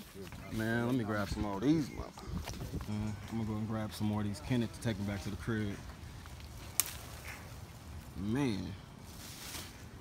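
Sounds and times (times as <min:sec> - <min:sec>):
twig snapping: 0:06.2 - 0:07.4.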